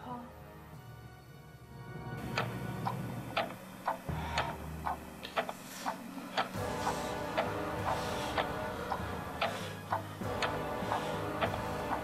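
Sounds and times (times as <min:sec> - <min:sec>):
low music drone: 0:00.0 - 0:12.0
clock-like ticking: 0:02.2 - 0:12.0.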